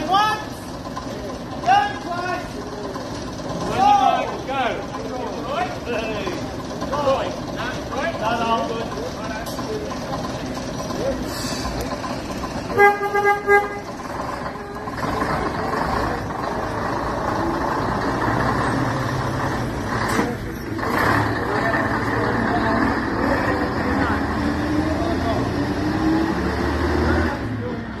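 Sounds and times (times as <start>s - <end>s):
bus diesel engine driving past: 0.0s - 28.0s.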